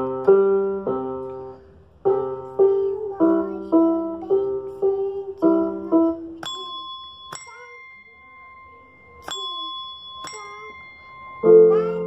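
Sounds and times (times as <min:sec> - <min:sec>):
desk bell ringing: 0:06.4 - 0:12.0.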